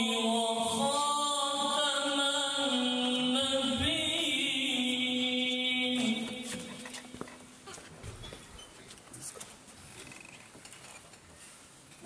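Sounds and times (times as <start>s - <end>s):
small clicks and rustles: 6.6s - 12.0s.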